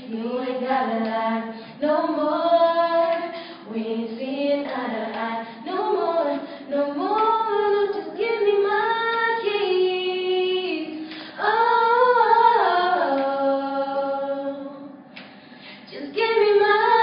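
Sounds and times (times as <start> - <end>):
girls singing a cappella: 0.0 - 17.0
singers breathing: 3.3 - 3.7, 11.0 - 11.4, 15.2 - 15.9.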